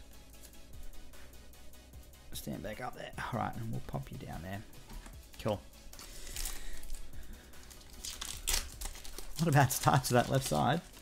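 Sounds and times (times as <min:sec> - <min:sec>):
foil wrapper tearing: 0:06.0 - 0:07.0, 0:07.6 - 0:11.0
foil wrapper crinkling: 0:06.0 - 0:11.0.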